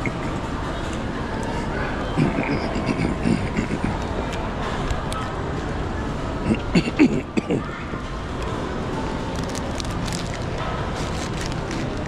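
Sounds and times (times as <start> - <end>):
indistinct voices: 0.0 - 12.0
nearby talk: 1.2 - 4.6.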